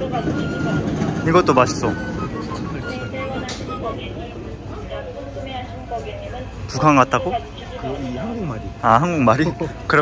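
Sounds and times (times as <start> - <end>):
background music: 0.0 - 5.8
indistinct voices: 0.0 - 10.0.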